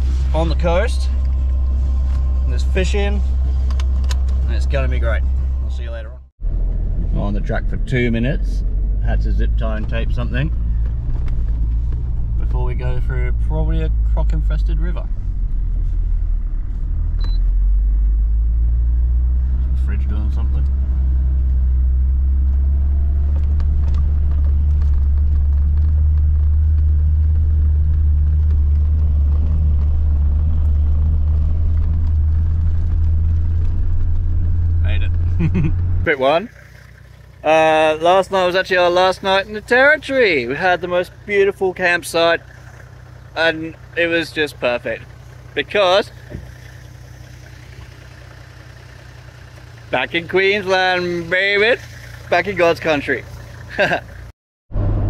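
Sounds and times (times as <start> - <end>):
heavy engine rumble: 0.0 - 55.0
low bump: 20.4 - 36.1.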